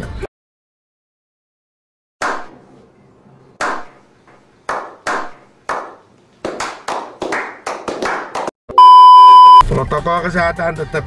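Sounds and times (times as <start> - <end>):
group slow clapping: 4.7 - 8.5.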